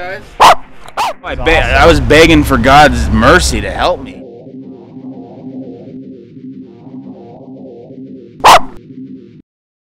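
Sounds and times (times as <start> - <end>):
dog barking: 0.4 - 1.2.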